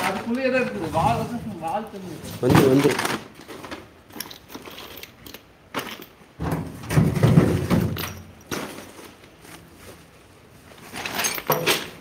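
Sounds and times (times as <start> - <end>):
person talking: 0.0 - 3.2.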